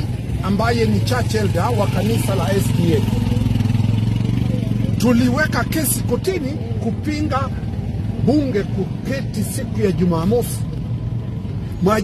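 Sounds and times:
engine humming steadily: 0:00.0 - 0:12.0.

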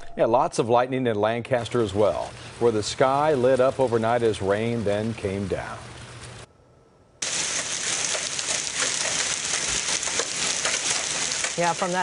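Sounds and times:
hail and rain on pavement: 0:07.2 - 0:12.0.

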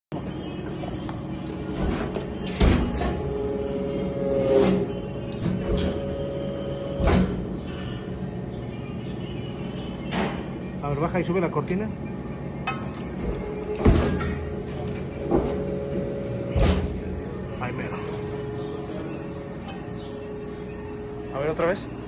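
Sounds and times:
hydraulic pump hum: 0:00.2 - 0:22.0
press ram clunks: 0:04.6 - 0:07.6, 0:12.7 - 0:17.3.

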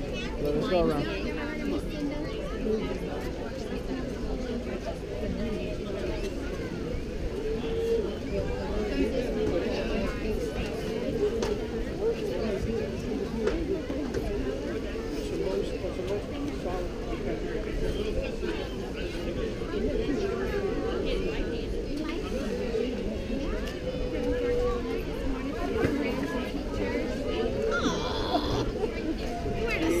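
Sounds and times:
babble of voices: 0:00.0 - 0:30.0.

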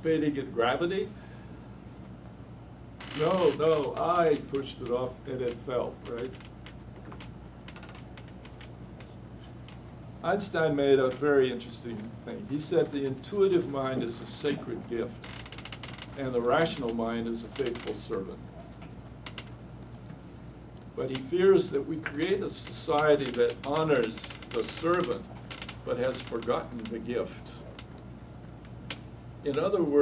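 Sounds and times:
steady low hum: 0:00.0 - 0:30.0
computer keyboard clicking: 0:12.5 - 0:14.2, 0:16.9 - 0:21.0, 0:27.6 - 0:30.0.

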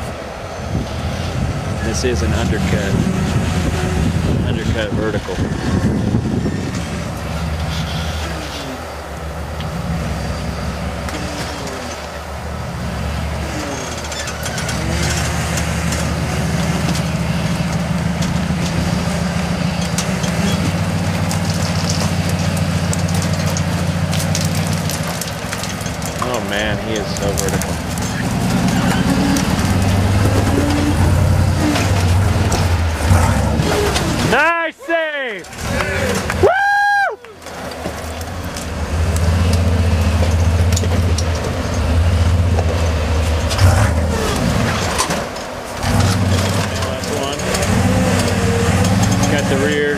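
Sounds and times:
buggy engine running under load: 0:00.0 - 0:34.7, 0:35.4 - 0:49.9
sharp clicks and knocks: 0:14.0 - 0:34.4.

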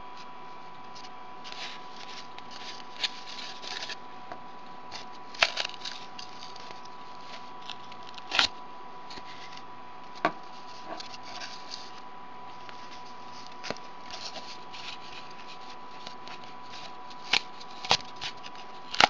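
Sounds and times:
thread rustling on cardboard: 0:00.9 - 0:04.0, 0:10.4 - 0:19.0.

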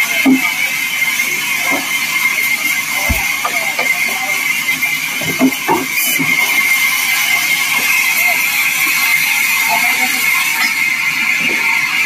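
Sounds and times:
bandsaw mill whining: 0:00.0 - 0:12.0.

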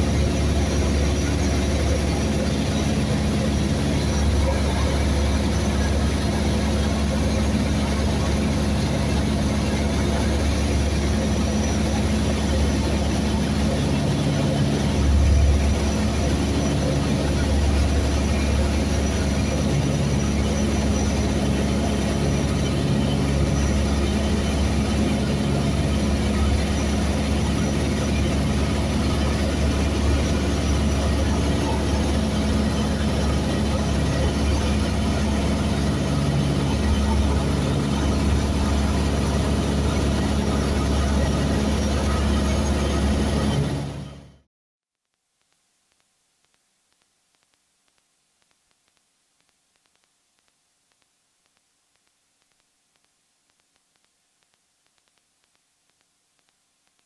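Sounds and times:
aircraft engine droning in cabin: 0:00.0 - 0:44.4.

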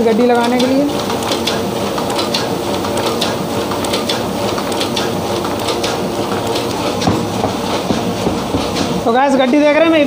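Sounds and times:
printing machine clatter: 0:00.0 - 0:10.0.

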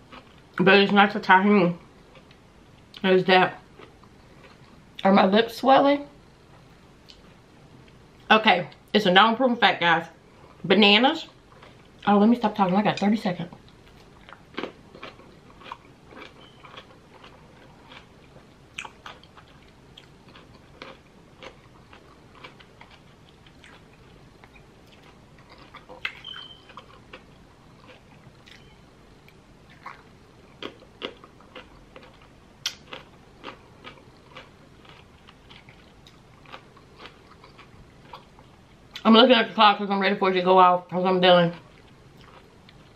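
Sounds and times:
person crunching cucumber: 0:13.8 - 0:39.0.

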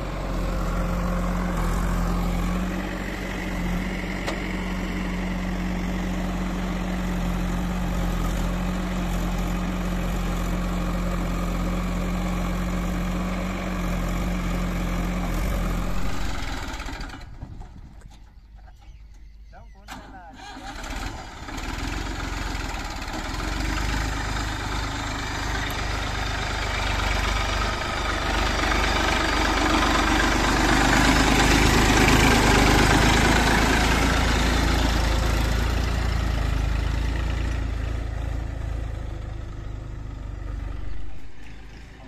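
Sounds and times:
tractor diesel engine rumbling: 0:00.0 - 0:42.0.

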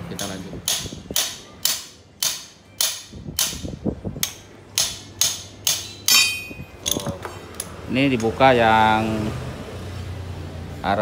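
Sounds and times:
hammer striking steel drift: 0:04.2 - 0:06.7.

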